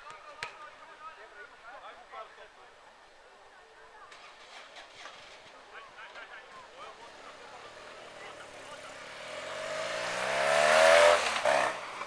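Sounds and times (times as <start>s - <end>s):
vehicle engine approaching: 6.8s - 12.0s.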